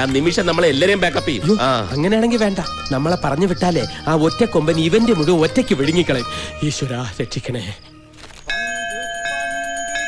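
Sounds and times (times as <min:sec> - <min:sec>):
temple bell ringing: 0:08.5 - 0:10.0.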